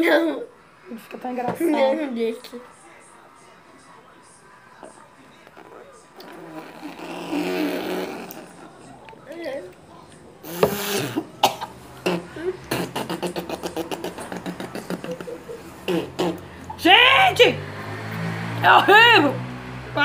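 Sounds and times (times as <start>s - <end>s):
laughter: 14.1s - 15.8s.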